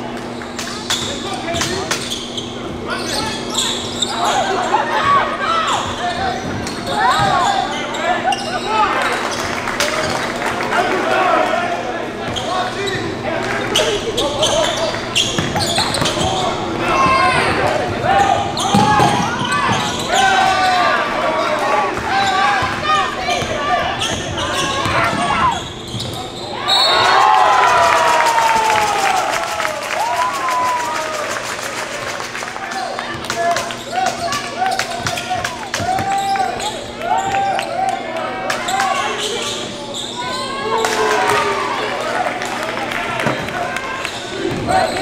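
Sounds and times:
voices echoing in a hall: 0.0s - 45.0s.

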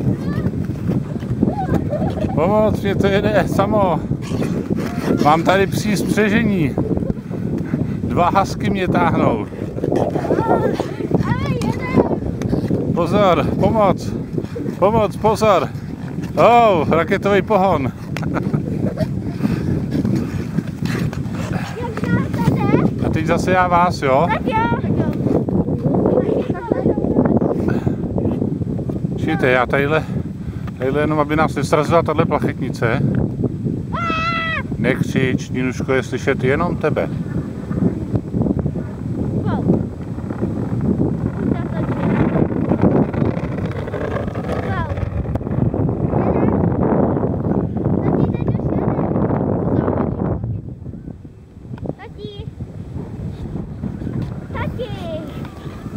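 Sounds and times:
wind on microphone: 0.0s - 55.9s
skate blades scraping ice: 0.1s - 2.3s, 4.2s - 6.4s, 17.9s - 23.1s, 39.6s - 45.7s, 53.3s - 55.9s.

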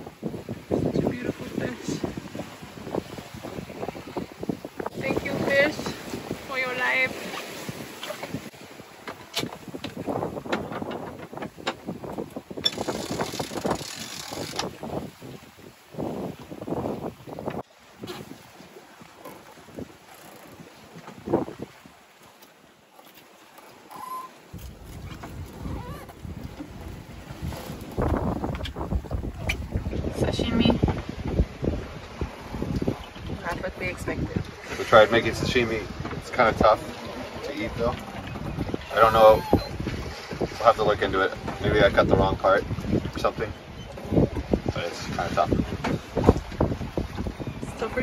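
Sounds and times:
wind buffeting microphone: 0.0s - 22.2s, 23.8s - 48.0s
water noise: 0.0s - 48.0s.

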